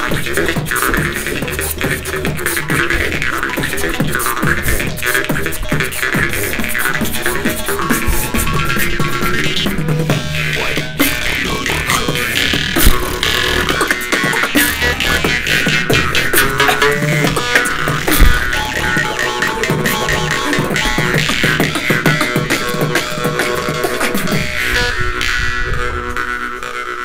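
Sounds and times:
beatboxing: 0.0 - 27.0
jaw harps droning: 0.0 - 27.0.

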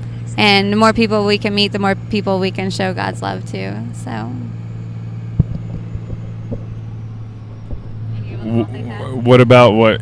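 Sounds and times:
vehicle engine and road noise: 0.0 - 10.0
short low thumps: 5.3 - 8.4.

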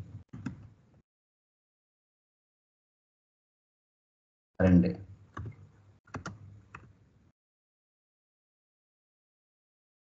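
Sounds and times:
keyboard keystrokes: 5.4 - 6.9.

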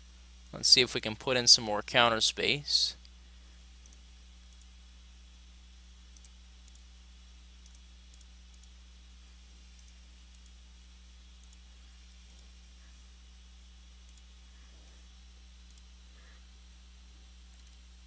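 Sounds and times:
steady low hum: 0.0 - 18.0
computer mouse clicks: 3.8 - 4.7, 6.1 - 6.9, 7.6 - 8.8, 9.7 - 10.6, 11.4 - 11.6, 12.2 - 12.5, 14.0 - 14.3, 15.6 - 15.9, 17.5 - 17.8.

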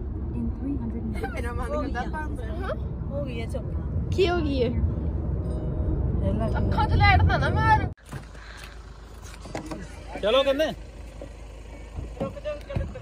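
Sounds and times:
car cabin rumble: 0.0 - 13.0
roadside background noise: 0.0 - 13.0.

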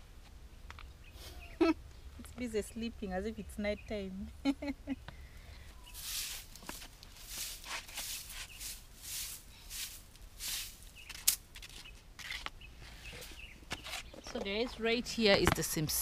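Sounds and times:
broom swishing on packed earth: 5.9 - 11.4.

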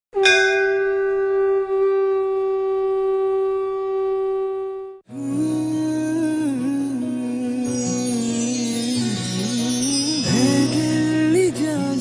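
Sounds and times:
conch shell blown: 0.1 - 5.1.

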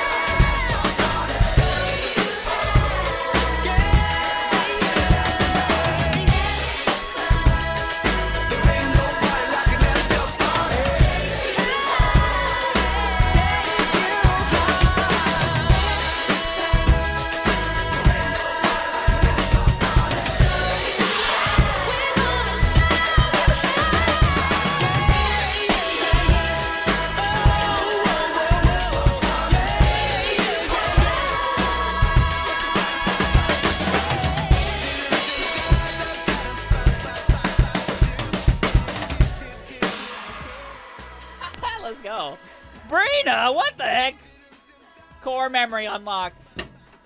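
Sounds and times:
acoustic drum kit playing: 0.0 - 40.8
dance-pop backing track: 0.0 - 46.8.

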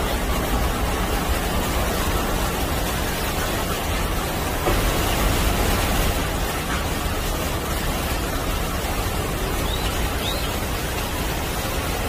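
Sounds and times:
fountain water splashing on stone: 0.0 - 12.0.

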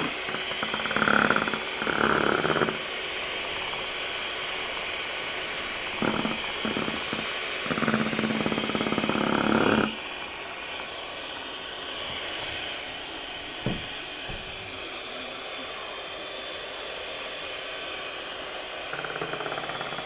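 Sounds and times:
electric hand mixer whirring: 0.0 - 20.0
single knock: 13.6 - 14.5.

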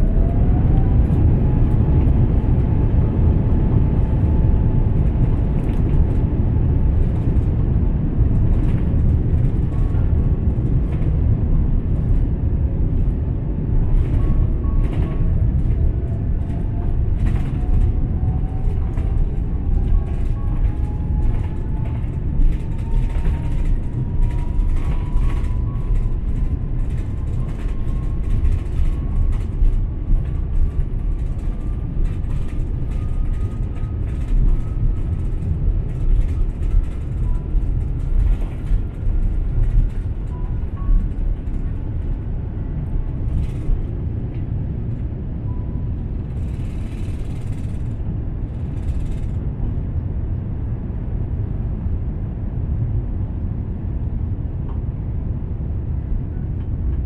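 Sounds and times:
rising engine whine: 0.0 - 52.0
jet engines and runway rumble: 0.0 - 57.0.

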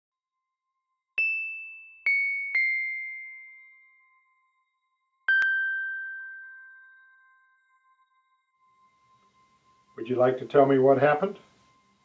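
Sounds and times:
bell-like chime notes: 1.2 - 12.0.

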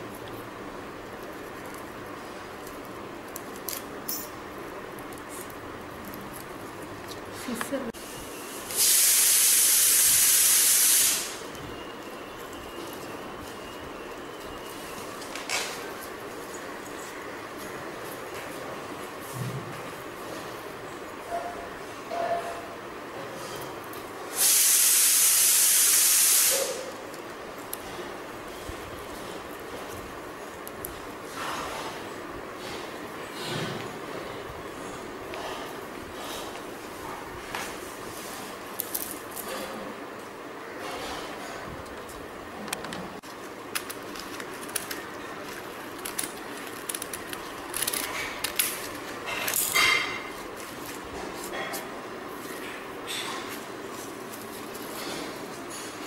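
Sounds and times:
steady background hiss: 0.0 - 56.0
loud steady hiss: 7.8 - 12.1, 24.2 - 28.8.

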